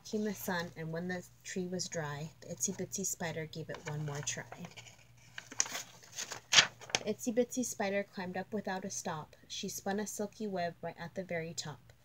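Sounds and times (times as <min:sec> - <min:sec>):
paper rustling: 0:03.6 - 0:07.1.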